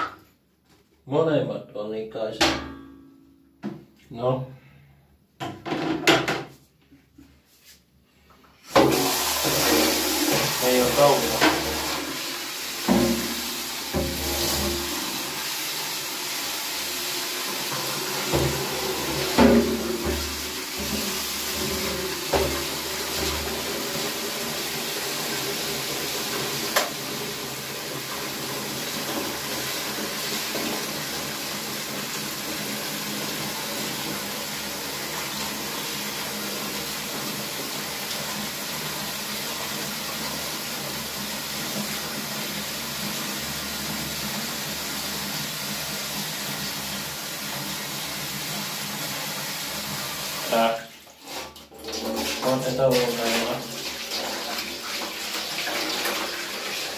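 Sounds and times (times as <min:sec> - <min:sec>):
tap water running: 0:08.6 - 0:56.9.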